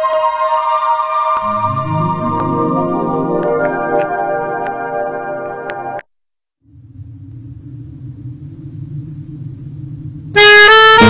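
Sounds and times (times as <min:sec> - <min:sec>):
low ambient rumble: 0:06.6 - 0:11.0.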